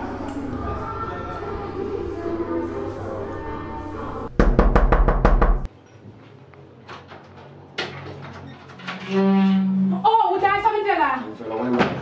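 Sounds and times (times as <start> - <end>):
rapid knocking on wooden door: 4.4 - 5.7.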